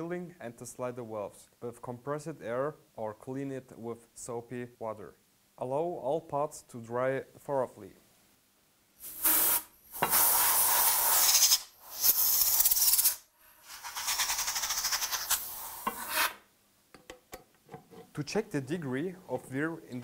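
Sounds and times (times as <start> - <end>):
compressed air blasts hissing: 9.0 - 16.0.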